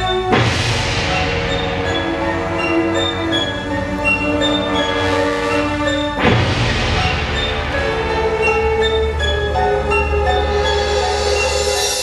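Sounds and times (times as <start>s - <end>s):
orchestra holding sustained chords: 0.0s - 12.0s.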